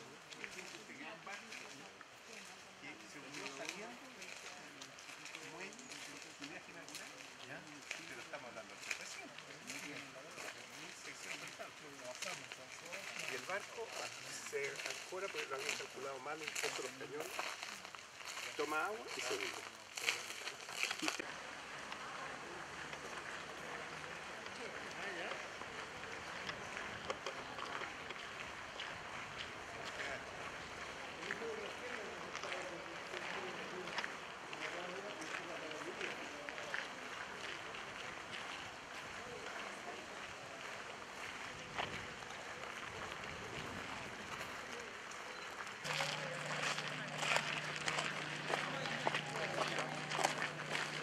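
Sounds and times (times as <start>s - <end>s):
crackling noise: 0.0s - 51.0s
distant indistinct voices: 0.0s - 51.0s
low steady hum: 45.8s - 51.0s.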